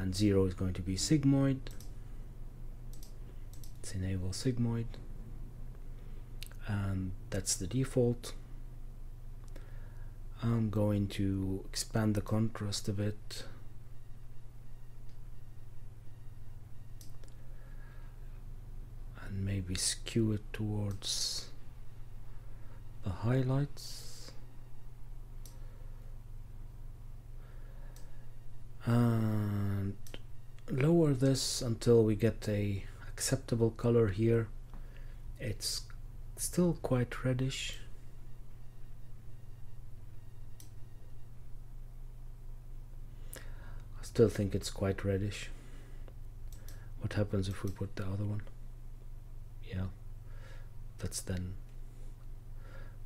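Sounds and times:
low electrical hum: 0.0s - 53.0s
faint click: 2.9s - 3.8s, 17.0s - 17.4s, 25.4s - 25.6s, 40.5s - 40.8s, 46.0s - 46.8s.

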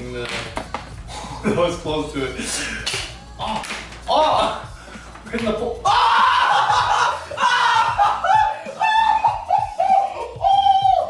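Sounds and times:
young men yelling and screaming: 5.6s - 11.0s.

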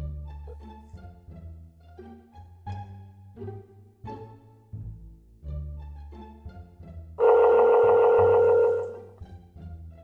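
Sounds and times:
bowed strings and bass music: 0.0s - 10.0s
phone ringback tone: 7.2s - 9.1s.

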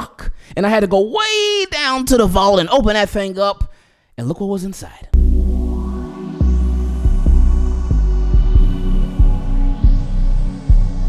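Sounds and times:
deep sustained bass notes: 5.2s - 11.0s.

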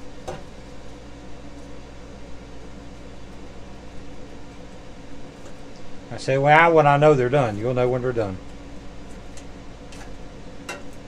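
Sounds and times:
air fryer fan humming: 0.0s - 11.0s.

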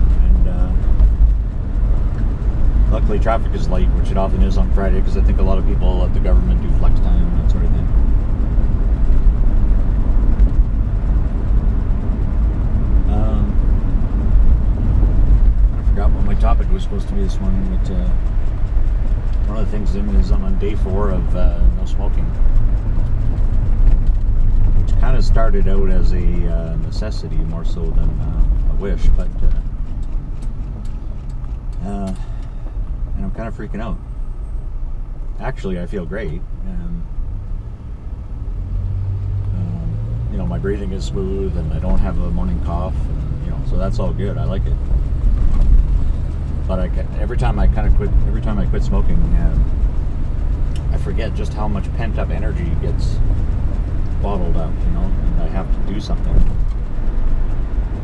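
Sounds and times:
car engine and road rumble: 0.0s - 58.0s.

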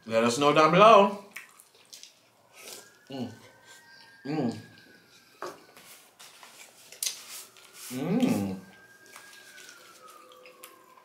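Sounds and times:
distant siren wailing: 0.0s - 11.0s.

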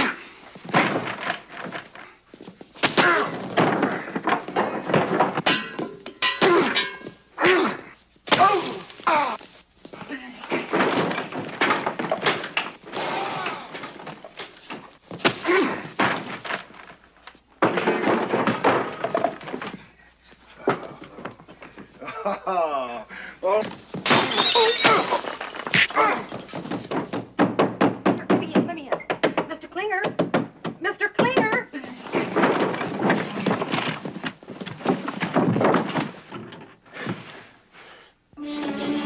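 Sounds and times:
bodies thudding on furniture: 0.5s - 19.9s, 23.5s - 29.4s, 30.1s - 37.5s
men grunting and crying out: 6.3s - 9.4s, 24.4s - 26.5s
thuds and blows: 23.7s - 37.5s.

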